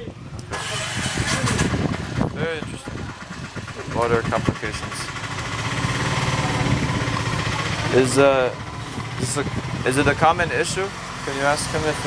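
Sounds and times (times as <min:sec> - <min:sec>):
engine idling: 0:00.5 - 0:12.0.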